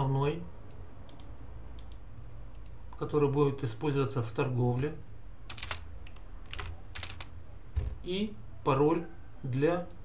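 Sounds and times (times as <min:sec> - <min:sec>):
keyboard keystrokes: 0:05.5 - 0:07.9.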